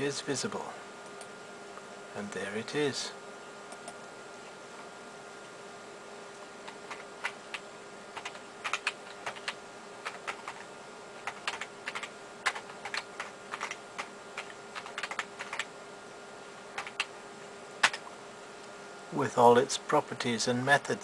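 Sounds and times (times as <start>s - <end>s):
faint steady hum: 0.0s - 21.0s
computer keyboard typing: 6.6s - 15.7s, 16.8s - 17.1s, 17.8s - 18.1s.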